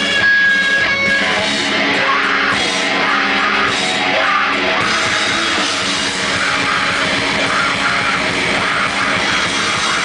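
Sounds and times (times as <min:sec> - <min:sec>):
loud distorted electric guitar: 0:00.0 - 0:10.0.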